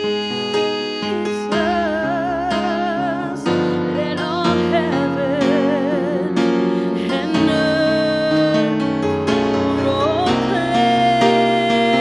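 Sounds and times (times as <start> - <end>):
instrumental accompaniment: 0.0 - 12.0
woman singing with vibrato: 0.0 - 12.0.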